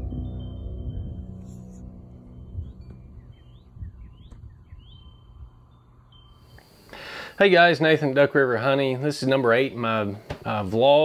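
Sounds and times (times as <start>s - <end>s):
soft ambient background music: 0.0s - 10.3s
small bird chirping: 0.2s - 7.0s.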